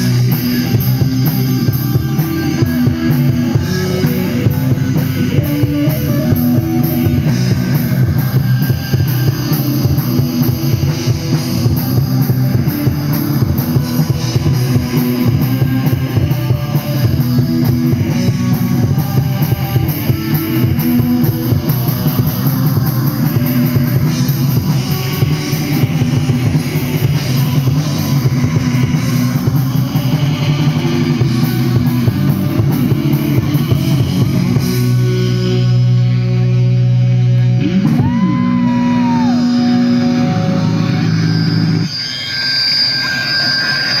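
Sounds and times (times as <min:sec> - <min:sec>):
drum kit beat: 0:00.0 - 0:36.0, 0:37.6 - 0:40.8
electric guitars: 0:00.0 - 0:44.0
noisy sound with high whine: 0:37.4 - 0:44.0.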